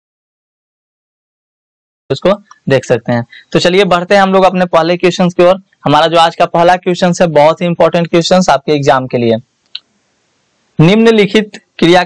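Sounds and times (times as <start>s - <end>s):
person speaking: 2.1s - 9.8s, 10.8s - 12.0s.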